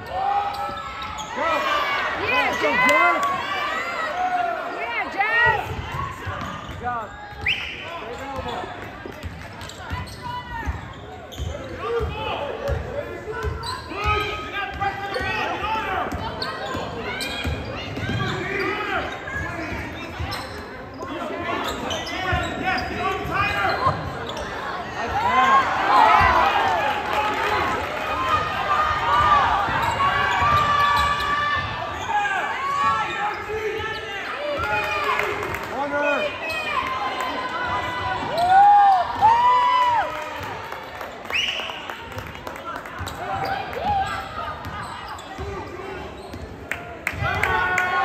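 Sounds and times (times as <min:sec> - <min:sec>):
sneakers squeaking: 0:00.4 - 0:04.2, 0:05.4 - 0:26.5, 0:28.3 - 0:39.5, 0:41.0 - 0:47.3
basketball bouncing on court: 0:05.4 - 0:07.4, 0:09.1 - 0:15.4, 0:16.1 - 0:18.4, 0:29.1 - 0:31.8.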